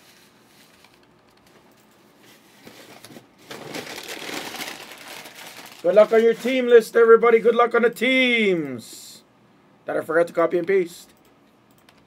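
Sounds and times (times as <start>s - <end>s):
rustling crinkling handling noise: 0.0s - 7.0s.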